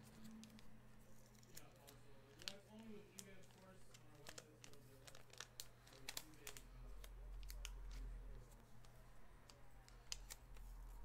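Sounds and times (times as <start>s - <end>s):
foil wrappers crinkling: 0.1s - 8.9s.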